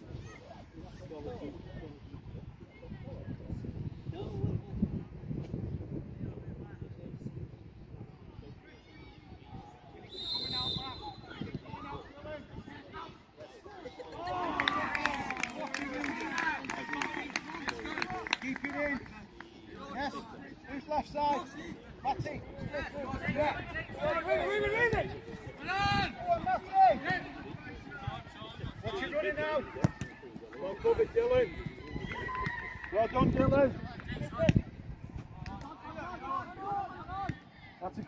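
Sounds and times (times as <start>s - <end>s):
referee's whistle: 10.0s - 11.4s.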